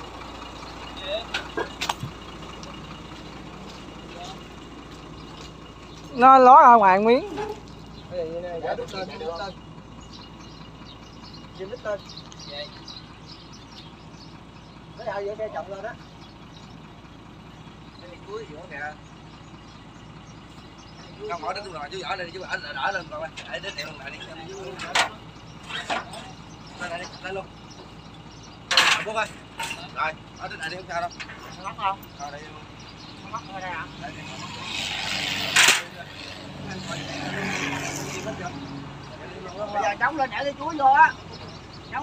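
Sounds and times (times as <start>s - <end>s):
truck engine idling: 0.0s - 42.0s.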